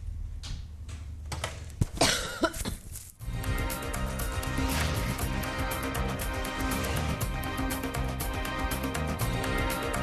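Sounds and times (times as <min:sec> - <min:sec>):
theme music with steady beat: 0:03.2 - 0:10.0.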